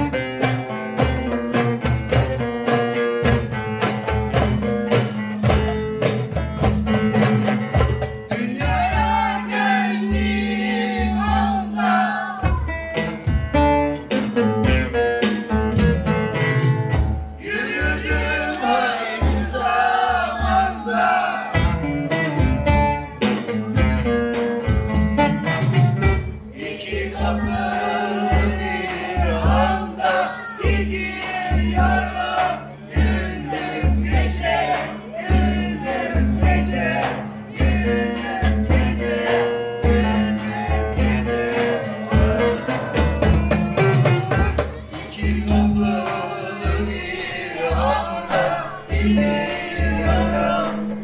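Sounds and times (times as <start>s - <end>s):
bass drum: 0.0s - 11.8s, 12.4s - 51.0s
plucked lute: 0.0s - 17.4s, 18.5s - 26.5s, 27.1s - 51.0s
goblet drums: 0.0s - 51.0s
person singing: 25.8s - 51.0s.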